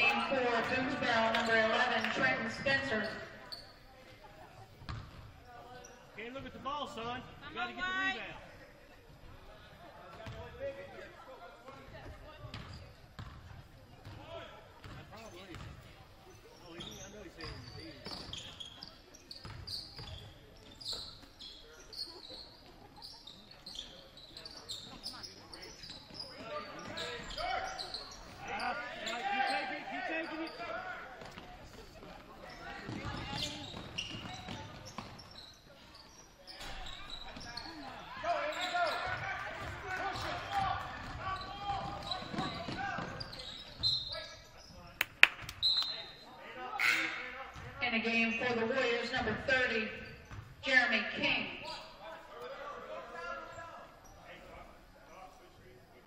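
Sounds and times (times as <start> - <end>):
basketball bouncing on wooden floor: 4.9 - 5.2, 12.5 - 13.4.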